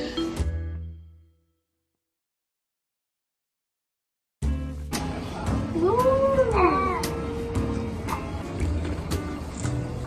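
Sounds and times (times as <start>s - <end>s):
meow-like whining call: 5.8s - 7.7s.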